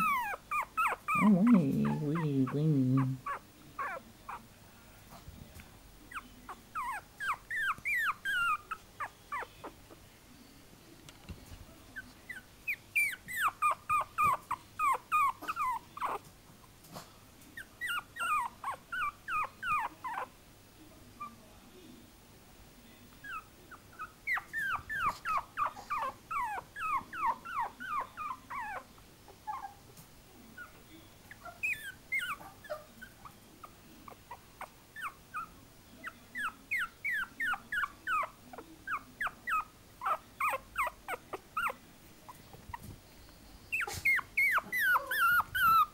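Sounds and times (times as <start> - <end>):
puppy whimpering squeaks: 0.0 - 4.4, 6.1 - 9.8, 12.0 - 16.2, 17.6 - 20.3, 23.2 - 29.8, 30.6 - 41.8, 43.7 - 45.9.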